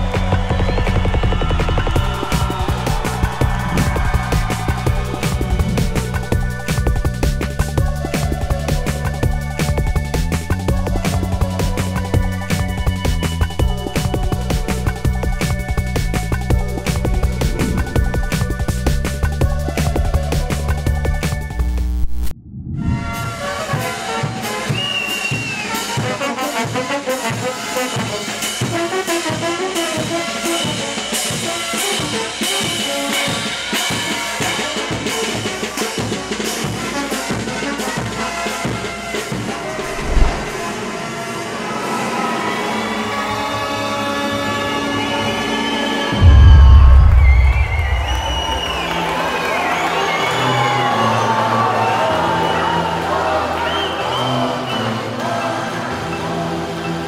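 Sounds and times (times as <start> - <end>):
loud low boom: 2.5 - 6.7, 46.1 - 49.6
brass band music: 23.1 - 41.2.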